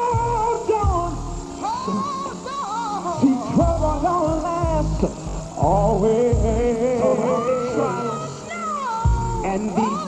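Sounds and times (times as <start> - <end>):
slowed male gospel vocal: 0.0 - 10.0
thin backing music: 0.0 - 10.0.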